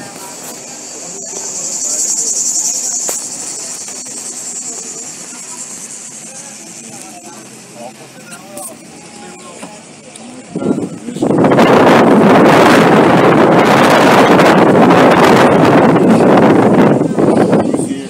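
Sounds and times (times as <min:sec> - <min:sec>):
cicadas buzzing: 0:00.0 - 0:09.2
faint voices: 0:00.0 - 0:18.0
vehicle running noise: 0:00.0 - 0:18.0.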